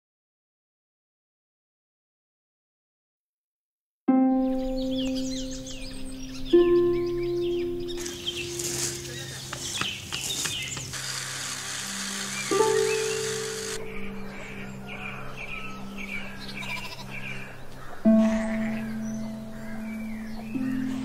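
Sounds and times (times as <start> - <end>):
film music of low held notes: 4.1 - 10.1, 11.1 - 21.0.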